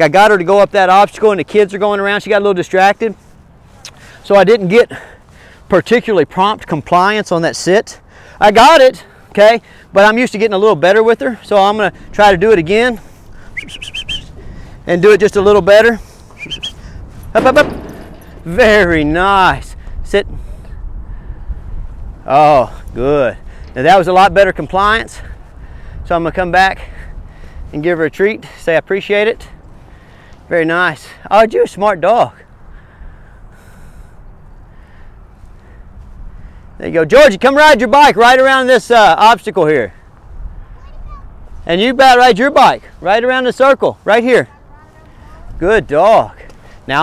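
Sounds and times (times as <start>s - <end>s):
steady low rumble: 10.8s - 27.8s
small bird chirping: 13.4s - 14.4s, 16.4s - 16.9s.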